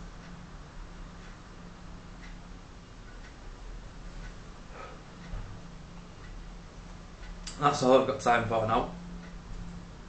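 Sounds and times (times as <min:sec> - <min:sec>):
faint even ticking: 0:00.0 - 0:10.0
steady low hum: 0:00.0 - 0:10.0.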